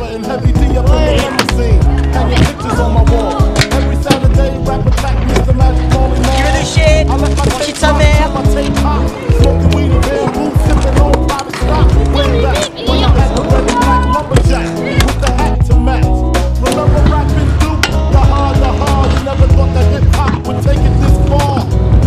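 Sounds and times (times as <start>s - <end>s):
hip-hop beat with heavy bass: 0.0s - 22.0s
rapped vocals: 0.0s - 22.0s.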